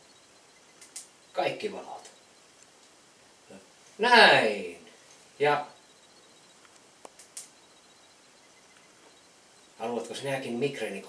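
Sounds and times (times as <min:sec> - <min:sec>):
faint short clicks: 0:00.8 - 0:01.1, 0:06.6 - 0:07.6.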